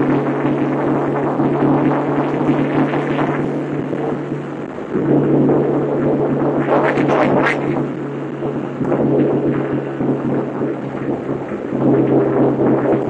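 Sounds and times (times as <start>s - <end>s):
car engine drone: 0.0s - 13.0s
road noise: 0.0s - 13.0s
wind noise: 0.0s - 13.0s.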